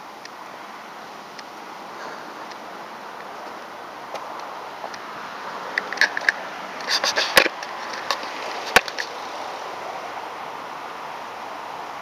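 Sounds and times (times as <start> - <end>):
street traffic hiss: 0.0 - 12.0
camera handled on concrete: 5.7 - 9.1.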